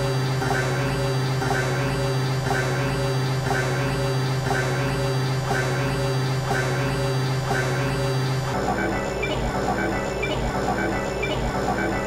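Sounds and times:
low synth drone: 0.0s - 12.0s
pulsing deep synth layer: 0.0s - 12.0s.

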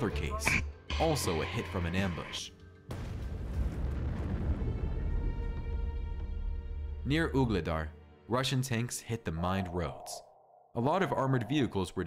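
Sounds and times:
explosion blast: 2.9s - 5.9s.

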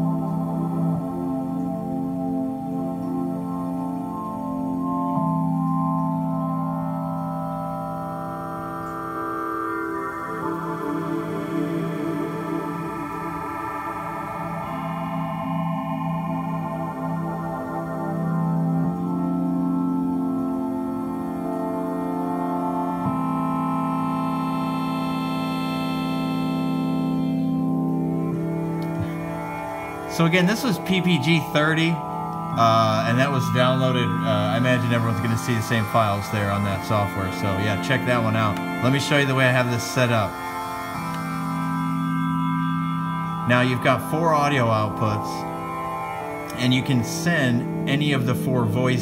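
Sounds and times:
synthesizer organ-like chord: 0.0s - 49.0s.

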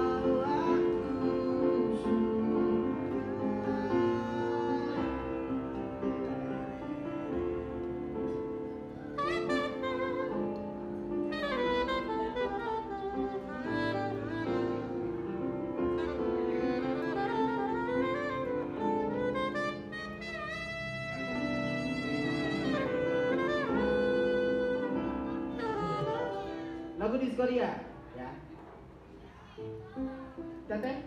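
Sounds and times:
saxophone solo: 0.0s - 27.0s.

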